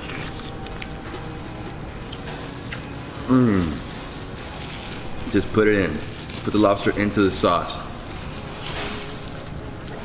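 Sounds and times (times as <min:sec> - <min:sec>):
soft chewing: 0:00.0 - 0:05.0
faint room hum: 0:00.0 - 0:10.0.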